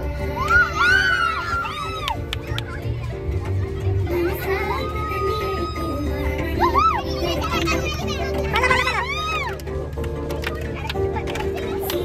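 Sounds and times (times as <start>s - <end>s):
girls shouting: 0.3s - 2.2s, 4.4s - 9.6s.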